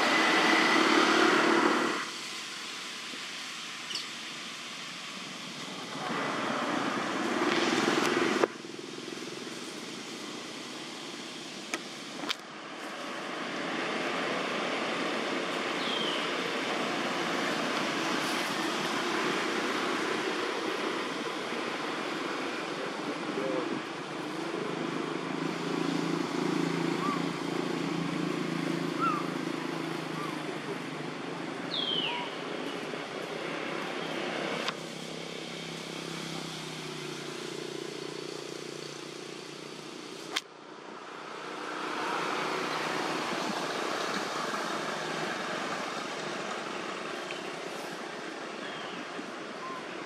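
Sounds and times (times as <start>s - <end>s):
steady outdoor hiss: 0.0s - 50.0s
distant voices: 5.1s - 50.0s.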